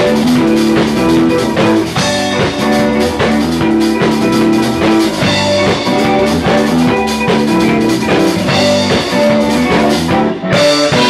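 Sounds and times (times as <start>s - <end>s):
bass guitar: 0.0s - 11.0s
drum kit with cymbals: 0.0s - 11.0s
electric guitars: 0.0s - 11.0s
keyboard: 0.0s - 11.0s.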